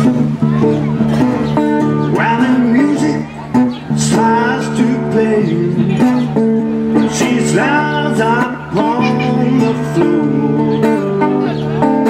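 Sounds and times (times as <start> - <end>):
person singing through amplifier: 0.0 - 11.9
acoustic guitar strumming: 0.0 - 12.0.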